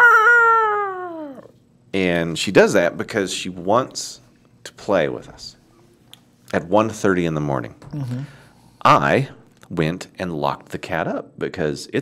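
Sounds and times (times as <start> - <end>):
man imitating cat yowl: 0.0 - 1.5.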